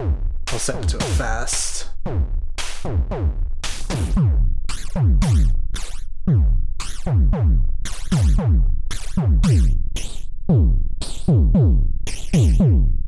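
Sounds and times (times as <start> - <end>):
phased hi-hats: 0.5 - 2.0
kick drum falling in pitch: 6.3 - 9.8.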